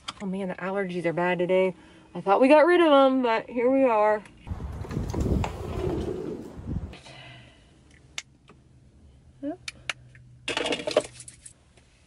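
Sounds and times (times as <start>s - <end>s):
low rumble: 4.5s - 7.0s.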